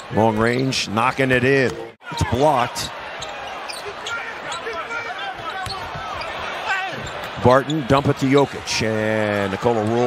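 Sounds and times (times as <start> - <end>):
arena crowd chatter: 0.0 - 10.0
players' voices: 0.0 - 10.0.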